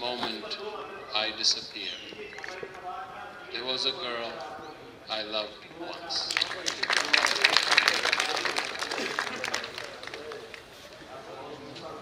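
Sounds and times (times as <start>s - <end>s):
audience applauding: 6.2s - 10.7s.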